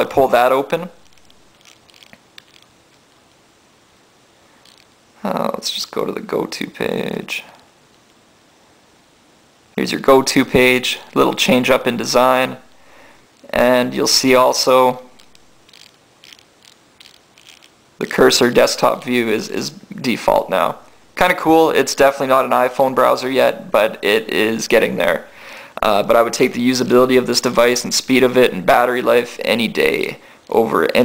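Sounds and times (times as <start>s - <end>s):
low hiss: 0.0s - 31.0s.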